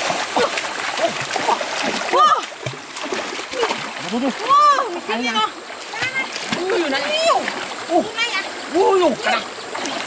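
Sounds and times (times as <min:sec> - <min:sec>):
water splashing in stream: 0:00.0 - 0:10.0.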